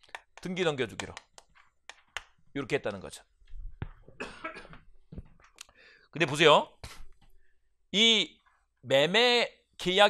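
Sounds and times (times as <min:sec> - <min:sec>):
man coughing into microphone: 0:04.2 - 0:04.9.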